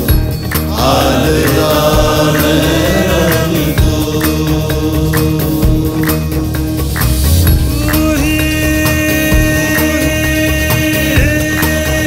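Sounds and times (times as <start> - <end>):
drum beat: 0.0 - 12.0
sustained backing music: 0.0 - 12.0
man singing: 0.7 - 6.8, 7.6 - 12.0.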